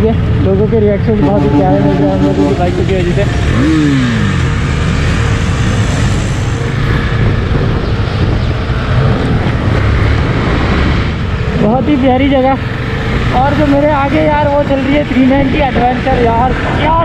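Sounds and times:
wind and road noise: 0:00.0 - 0:17.0
motorcycle engine running: 0:00.2 - 0:07.8
falling tone: 0:01.1 - 0:04.3.

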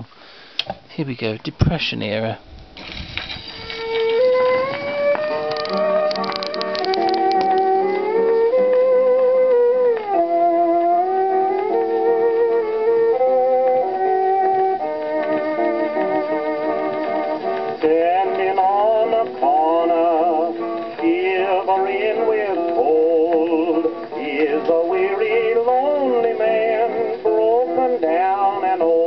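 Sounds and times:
country song on gramophone: 0:03.3 - 0:29.0.

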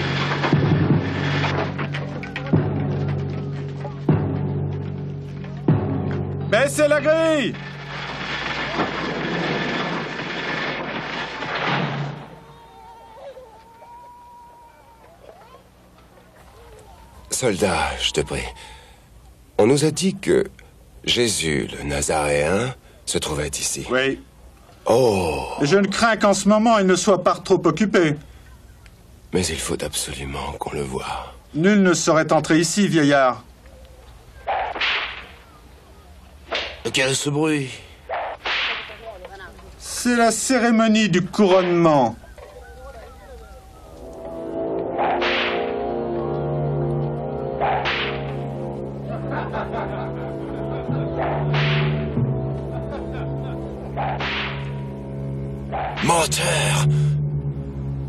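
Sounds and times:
faint voices: 0:12.4 - 0:19.8, 0:33.4 - 0:36.5, 0:41.7 - 0:44.4
whip lash: 0:34.5 - 0:35.4, 0:36.5 - 0:36.8, 0:38.1 - 0:39.1, 0:45.0 - 0:45.8, 0:47.6 - 0:48.4, 0:51.2 - 0:52.1, 0:54.0 - 0:54.8, 0:55.7 - 0:56.1
loud noisy din: 0:43.9 - 0:58.0.

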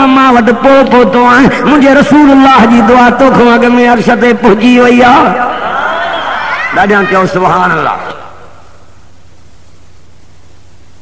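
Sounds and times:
man's voice: 0:00.0 - 0:05.6, 0:06.7 - 0:08.4
cassette tape hiss and hum: 0:05.5 - 0:11.0.

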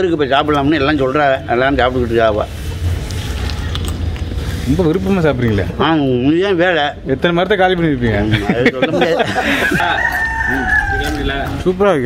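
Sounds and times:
rooster crowing: 0:09.4 - 0:11.6.

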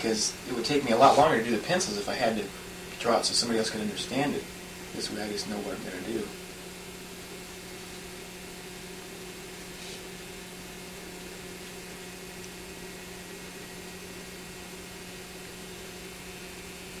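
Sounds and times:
low electrical hum: 0:00.0 - 0:17.0
tape hiss: 0:00.0 - 0:17.0.

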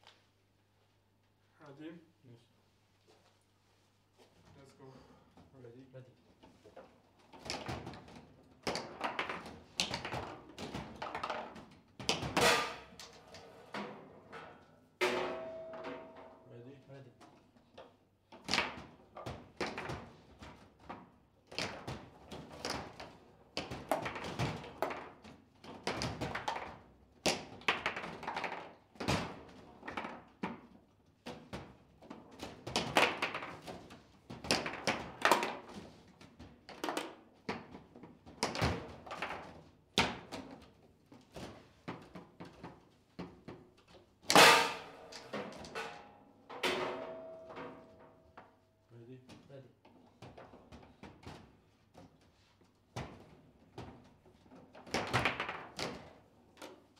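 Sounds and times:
table football knocks and clacks: 0:06.6 - 0:14.4, 0:17.2 - 0:46.1, 0:49.3 - 0:56.9.

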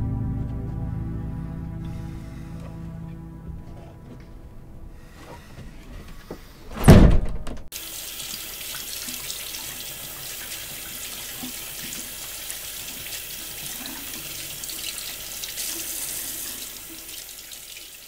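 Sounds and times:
loud low thump: 0:00.0 - 0:05.0, 0:06.7 - 0:07.7
faucet running into sink: 0:07.8 - 0:18.0.

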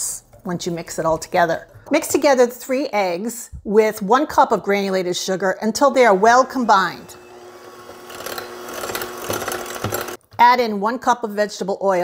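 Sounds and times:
electric hand mixer whisking: 0:05.8 - 0:10.2.

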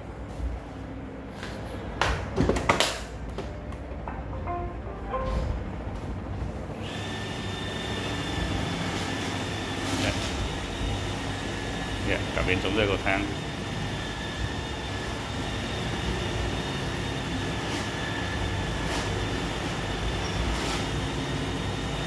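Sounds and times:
start-up tones: 0:04.1 - 0:05.9
vacuum motor whine: 0:06.7 - 0:22.0.

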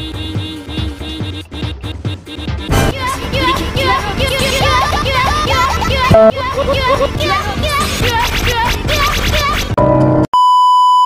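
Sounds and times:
sped-up chirpy singing: 0:03.0 - 0:09.2
test-tone beep: 0:06.1 - 0:06.4.

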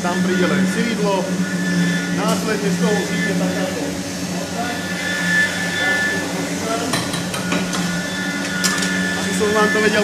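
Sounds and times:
machinery humming: 0:00.0 - 0:10.0.

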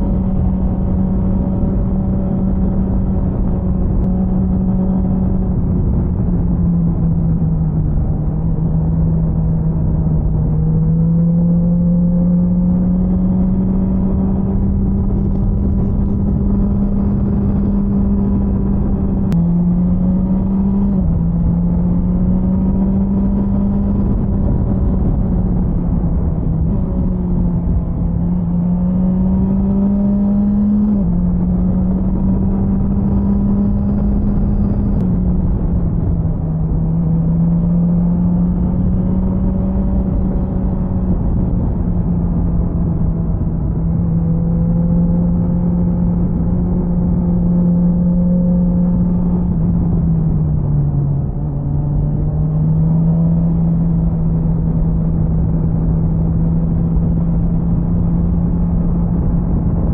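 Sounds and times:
motorcycle engine cruising: 0:00.0 - 0:59.9
wind noise on microphone: 0:00.0 - 0:59.9.

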